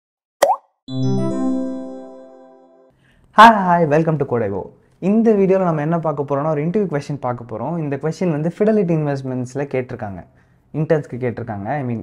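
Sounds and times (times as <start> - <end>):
sustained musical chord: 0.9 - 2.9.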